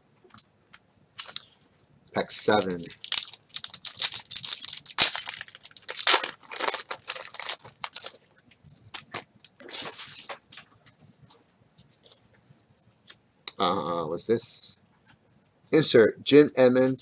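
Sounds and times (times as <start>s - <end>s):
plastic wrapper crinkling and tearing: 1.2s - 1.6s, 2.3s - 10.4s.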